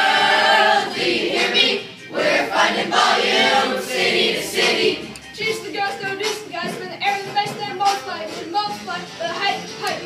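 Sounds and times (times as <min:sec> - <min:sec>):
group singing in unison: 0:00.0 - 0:05.2.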